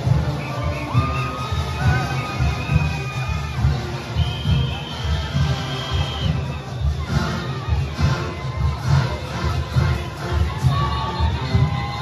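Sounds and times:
crowd cheering and shouting: 0:00.0 - 0:12.0
drums beating fast pulse: 0:00.0 - 0:12.0.

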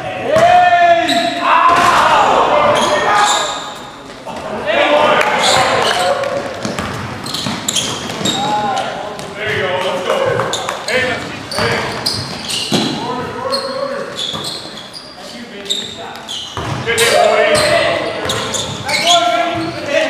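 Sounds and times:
players shouting: 0:00.0 - 0:06.8, 0:16.8 - 0:20.0
basketball bouncing on gym floor: 0:06.3 - 0:10.7, 0:16.6 - 0:16.9.

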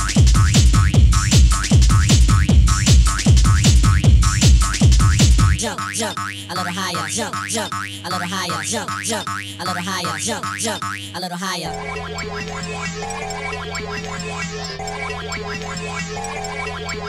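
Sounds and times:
held bass note: 0:00.0 - 0:05.6
heavy kick drum beat: 0:00.0 - 0:05.7.

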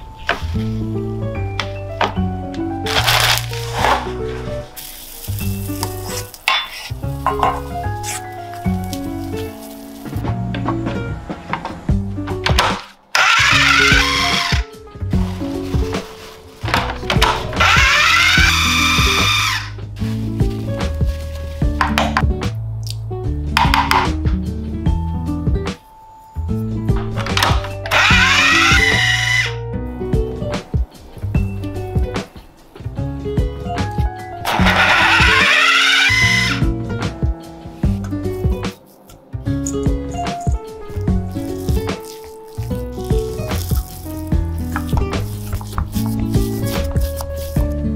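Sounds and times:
background music: 0:00.0 - 0:47.9
food processor motor chopping: 0:13.2 - 0:14.6, 0:17.6 - 0:19.7, 0:27.9 - 0:29.5, 0:34.5 - 0:36.6
food processor whirring: 0:13.2 - 0:14.6, 0:34.5 - 0:36.6.

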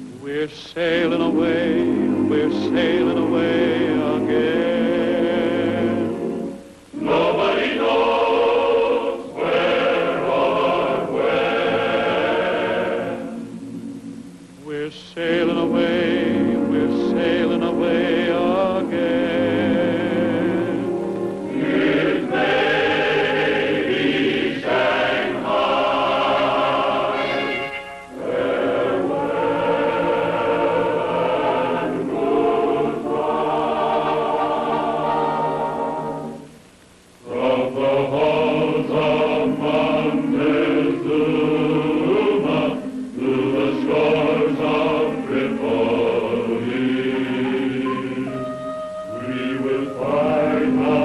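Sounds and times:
choir singing held chords: 0:00.0 - 0:51.0.

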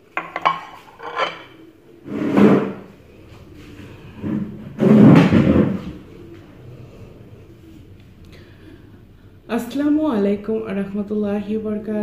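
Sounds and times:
crockery clattering: 0:00.0 - 0:01.6
crockery clinking on stone: 0:00.2 - 0:01.6.

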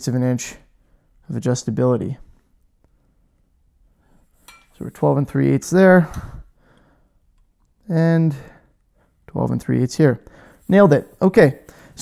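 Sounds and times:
man speaking: 0:00.0 - 0:02.4, 0:04.8 - 0:06.4, 0:07.8 - 0:08.6, 0:09.3 - 0:12.0
metal ruler clink: 0:04.4 - 0:04.9.

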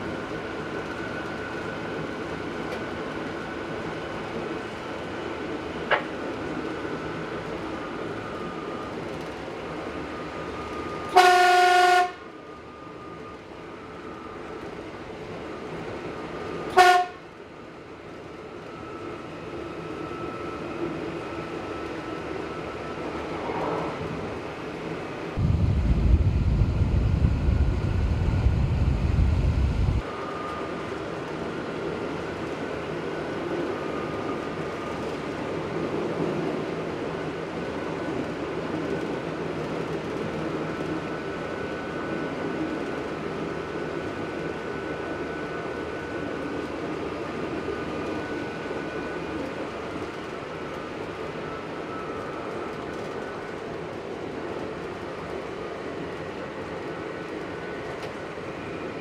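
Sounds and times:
railcar running noise: 0:00.0 - 0:59.0
railcar horn: 0:11.1 - 0:12.3, 0:16.7 - 0:17.3
loud low rumble: 0:25.4 - 0:30.0.

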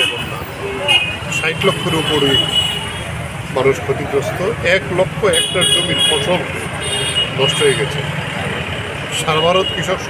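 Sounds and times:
low hum of road traffic: 0:00.0 - 0:10.0.

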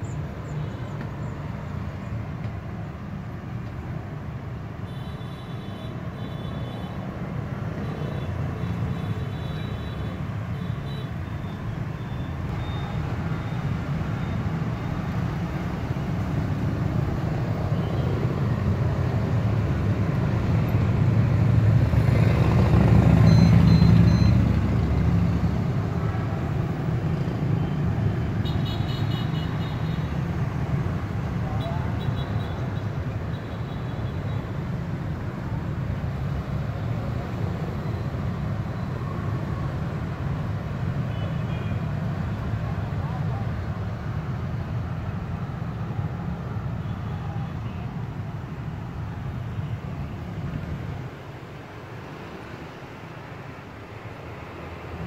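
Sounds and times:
road traffic rumble: 0:00.0 - 0:55.0
loud vehicle passing: 0:18.4 - 0:27.0.

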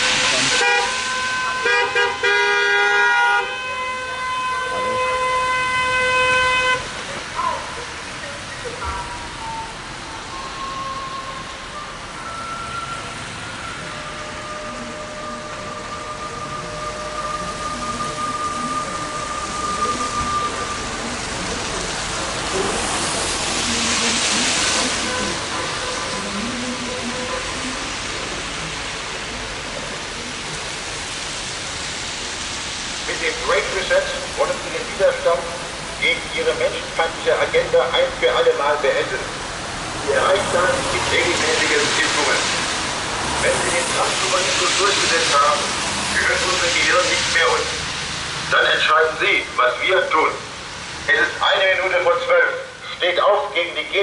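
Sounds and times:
loud hiss of noise: 0:00.0 - 0:01.4, 0:19.4 - 0:54.0
car horns honking: 0:00.0 - 0:07.0, 0:24.8 - 0:28.0
steady traffic noise: 0:00.0 - 0:54.0.

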